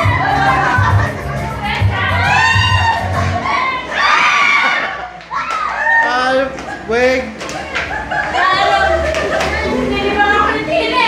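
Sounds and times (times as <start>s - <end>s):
women shrieking and laughing: 0.0s - 6.0s, 7.6s - 11.0s.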